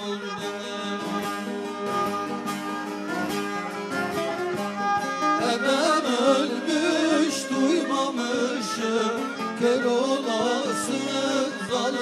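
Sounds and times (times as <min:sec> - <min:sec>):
man singing: 0:00.0 - 0:01.7, 0:05.4 - 0:12.0
plucked saz folk melody: 0:00.0 - 0:12.0.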